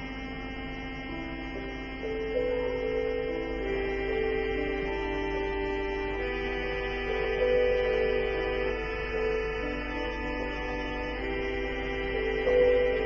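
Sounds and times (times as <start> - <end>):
keyboard chords: 0.0 - 13.0.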